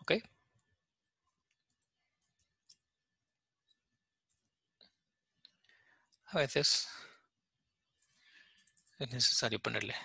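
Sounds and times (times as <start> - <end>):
man speaking: 0.0 - 0.4
faint clicks: 1.4 - 2.9, 7.9 - 9.0.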